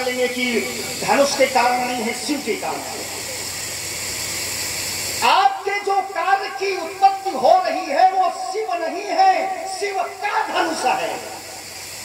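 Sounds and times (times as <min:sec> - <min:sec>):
public address system hiss: 0:00.0 - 0:12.0.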